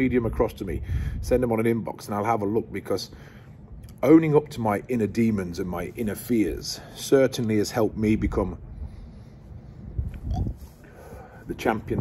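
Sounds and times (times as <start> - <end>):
breathy exhale: 10.6 - 11.5.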